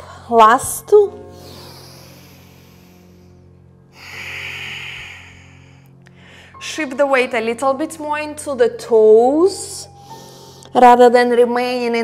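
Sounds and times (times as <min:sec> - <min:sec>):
soft background music: 0:00.0 - 0:12.0
woman breathing: 0:01.2 - 0:06.6, 0:10.0 - 0:10.7.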